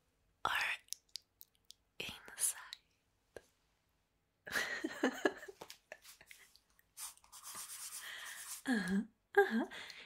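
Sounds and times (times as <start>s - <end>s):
woman whispering: 0.4s - 1.0s, 2.0s - 2.8s
mouth clicks: 0.6s - 1.8s.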